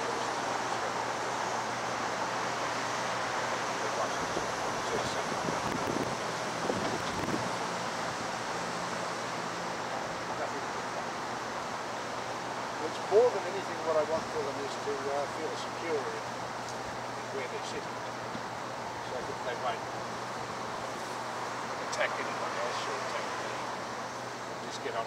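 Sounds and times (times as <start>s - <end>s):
wind noise on microphone: 4.2s - 7.6s.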